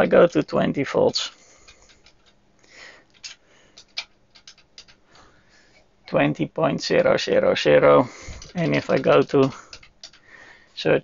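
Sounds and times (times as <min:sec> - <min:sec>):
front-panel keys clicking: 0:00.0 - 0:02.4, 0:03.1 - 0:05.0, 0:08.0 - 0:10.3.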